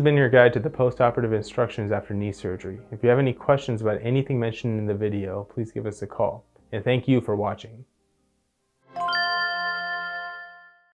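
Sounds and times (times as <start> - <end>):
bell-like chime chord: 8.9 - 10.9.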